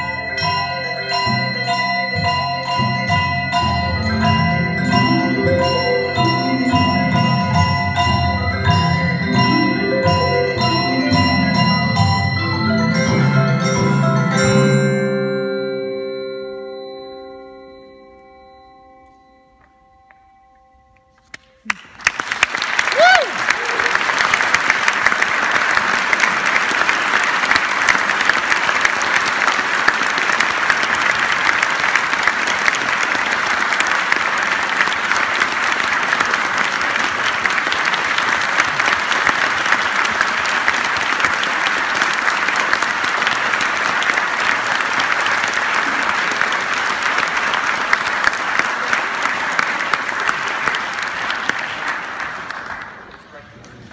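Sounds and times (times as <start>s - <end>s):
audience applause: 3.5s - 12.1s, 21.3s - 53.9s.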